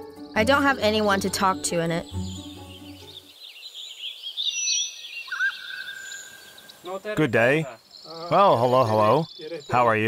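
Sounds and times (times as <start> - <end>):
songbirds chirping: 0.0 - 10.0.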